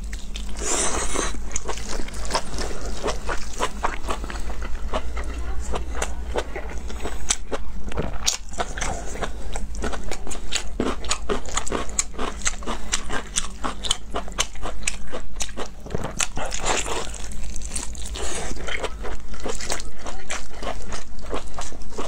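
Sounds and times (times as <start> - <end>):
wet crunchy chewing: 0.0 - 22.0.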